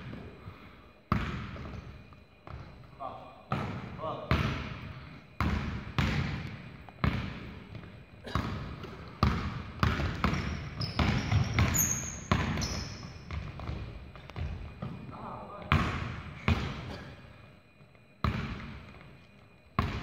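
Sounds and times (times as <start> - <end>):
basketball bouncing on gym floor: 1.1 - 2.9, 3.5 - 17.1, 18.2 - 19.1, 19.8 - 20.0.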